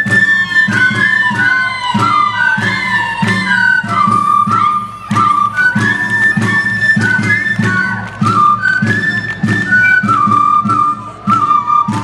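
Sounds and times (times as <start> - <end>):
drum beat: 0.0 - 12.0
high flute melody: 0.0 - 12.0.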